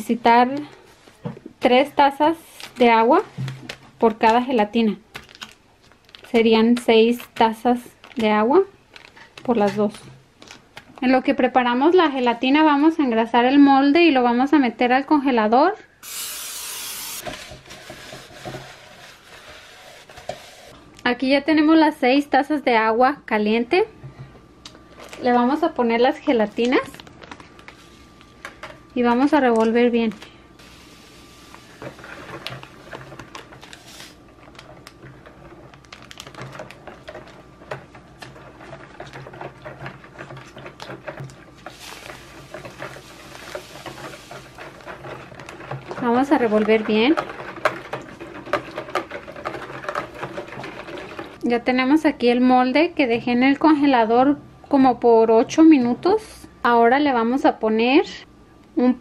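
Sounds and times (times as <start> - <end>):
aerosol spray hissing: 16.0 - 17.2
paper towel rubbing pan: 17.1 - 20.7, 41.6 - 51.4
whisk wires clicking against bowl: 34.4 - 51.4
liquid swishing: 36.3 - 51.4.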